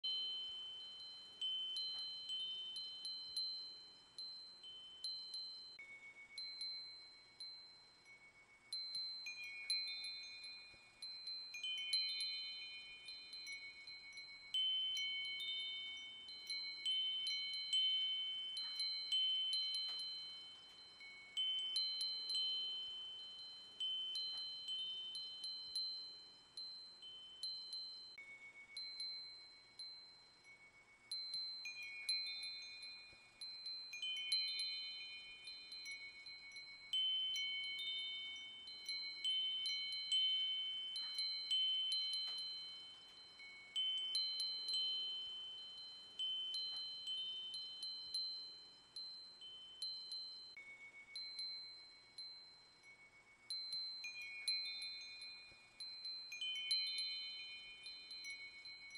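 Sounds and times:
wind chimes tinkling: 0:00.0 - 0:58.9.

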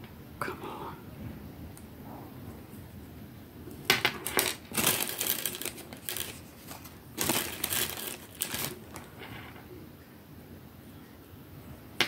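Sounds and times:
beads rustling and clicking: 0:04.2 - 0:09.1.

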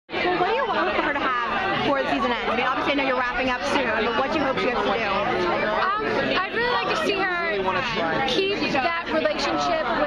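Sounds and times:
people talking: 0:00.2 - 0:10.0.

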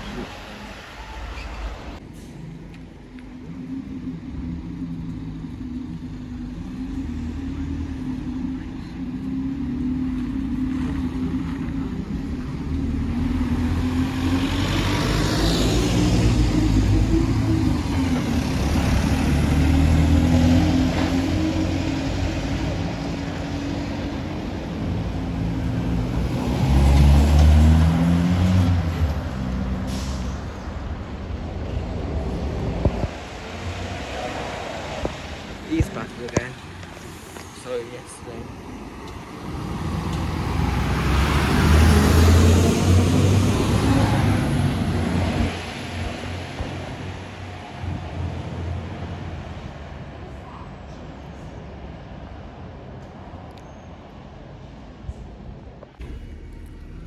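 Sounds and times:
bus engine passing: 0:00.0 - 0:57.0
bus engine rumbling: 0:00.0 - 0:57.0.

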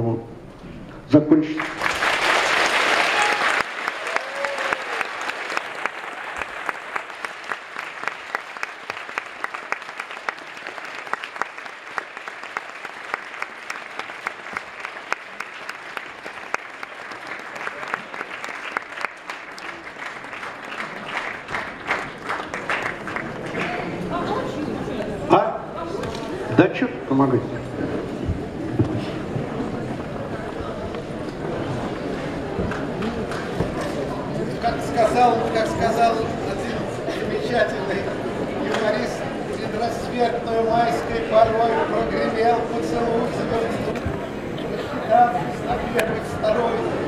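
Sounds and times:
audience applauding: 0:01.5 - 0:24.6, 0:31.0 - 0:37.9.

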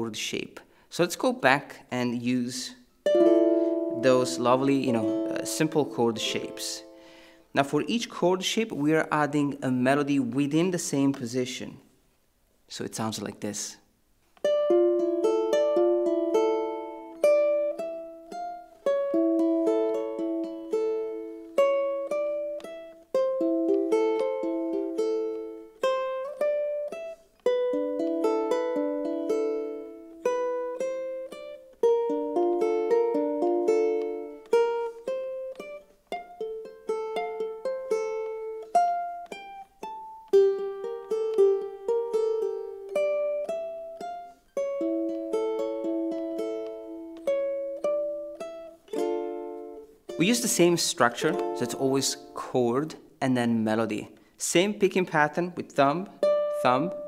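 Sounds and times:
ukulele played fingerstyle: 0:02.8 - 0:11.4, 0:14.2 - 0:53.1, 0:55.8 - 0:57.0.

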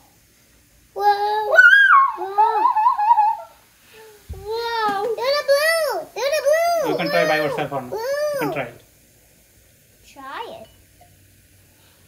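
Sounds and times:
child squealing: 0:01.0 - 0:03.6, 0:05.5 - 0:08.6.

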